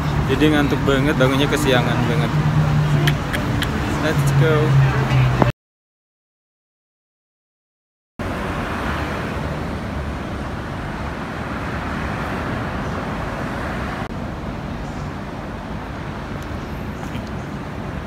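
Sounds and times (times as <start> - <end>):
road traffic rumble: 0.0 - 5.5, 8.2 - 18.0.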